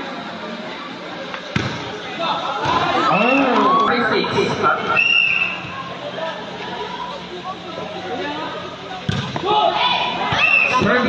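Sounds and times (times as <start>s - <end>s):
voices of players and spectators: 0.0s - 11.0s
volleyball thud: 1.5s - 1.9s, 9.1s - 9.6s.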